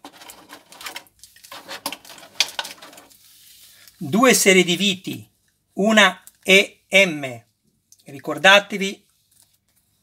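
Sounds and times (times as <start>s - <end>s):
plastic packaging crackling and clicking: 0.0s - 3.2s.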